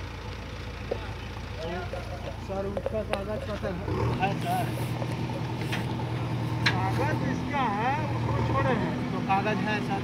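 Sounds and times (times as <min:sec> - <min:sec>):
diesel engine running: 0:00.0 - 0:10.0
people talking: 0:00.9 - 0:05.0, 0:06.6 - 0:10.0.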